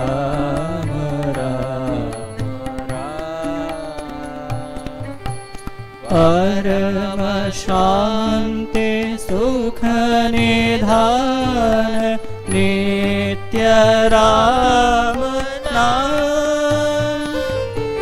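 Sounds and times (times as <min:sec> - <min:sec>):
harmonium: 0:00.0 - 0:18.0
man singing devotional song: 0:00.0 - 0:18.0.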